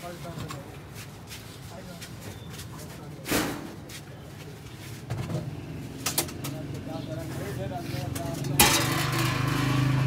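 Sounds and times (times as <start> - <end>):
metal cookware clank: 8.4 - 9.9.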